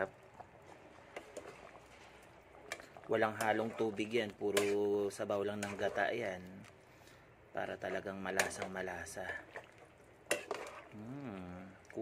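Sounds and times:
stew bubbling in a pot: 0:00.0 - 0:12.0.

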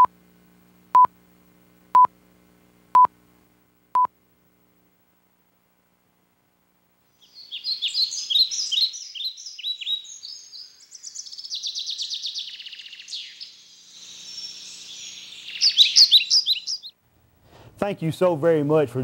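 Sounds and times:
birds chirping and singing: 0:07.2 - 0:16.9.

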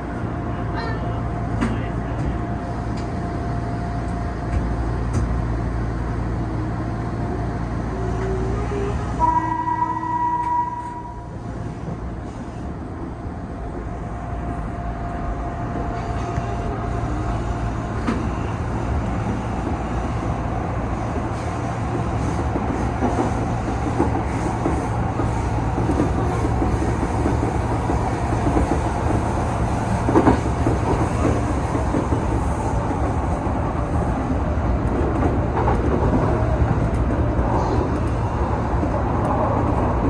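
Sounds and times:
train horn blast: 0:08.7 - 0:11.3.

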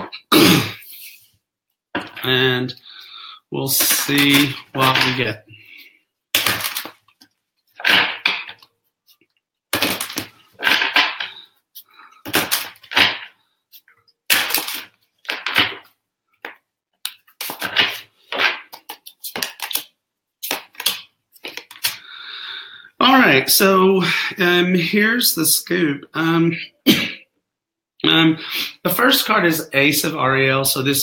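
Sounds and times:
cards being shuffled by hand: 0:03.7 - 0:05.4, 0:06.4 - 0:09.2, 0:09.8 - 0:22.0.

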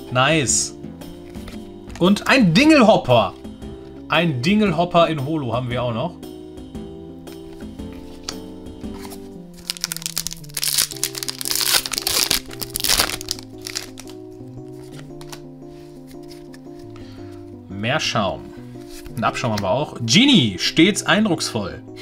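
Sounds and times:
background music: 0:00.0 - 0:22.0
crinkling of cards and foil packaging: 0:08.9 - 0:17.0.

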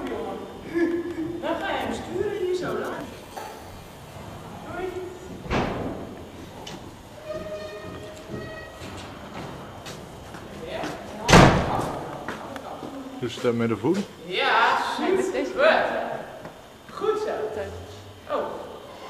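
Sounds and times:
heavy thump echoing in hall: 0:05.2 - 0:07.5, 0:08.9 - 0:12.1.

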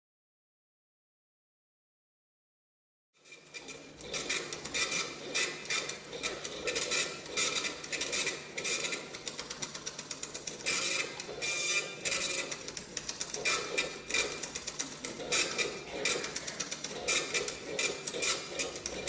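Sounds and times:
rapid irregular clicking and rattling: 0:03.2 - 0:19.0.

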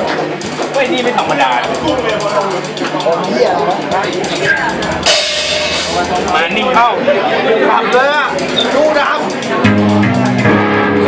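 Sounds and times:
crowd shouting and chattering: 0:00.0 - 0:11.0
cymbal crash: 0:04.3 - 0:07.1.

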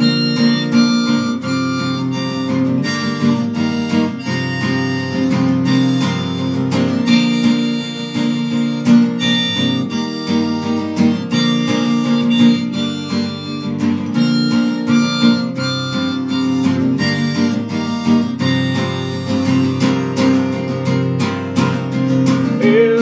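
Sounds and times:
acoustic guitar accompaniment: 0:00.0 - 0:23.0
harmonica melody: 0:00.0 - 0:23.0.

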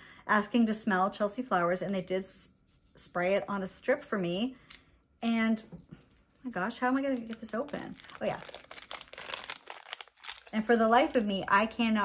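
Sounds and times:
foil wrapper crinkling: 0:06.1 - 0:11.4.

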